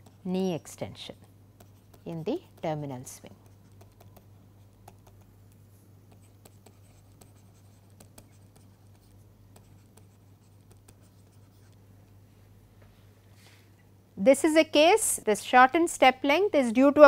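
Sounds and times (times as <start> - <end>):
stylus tapping and scratching on screen: 0.0 - 11.9
steady low hum: 0.0 - 17.0.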